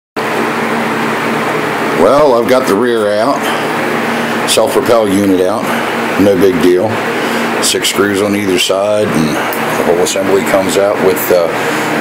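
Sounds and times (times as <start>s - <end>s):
machine hiss with low hum: 0.2s - 12.0s.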